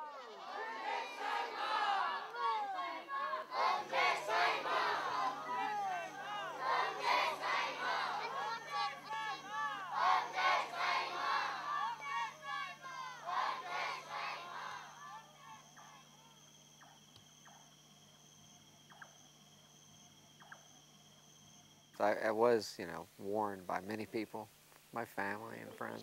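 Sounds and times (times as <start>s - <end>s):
crowd calling out: 0.0s - 16.2s
faint steady hum: 0.0s - 26.0s.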